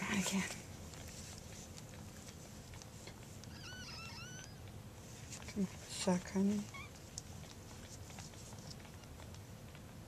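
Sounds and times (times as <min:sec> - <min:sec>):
hands rustling: 0:00.3 - 0:03.7, 0:05.0 - 0:09.4
puppy squealing: 0:03.5 - 0:04.7, 0:06.7 - 0:07.0.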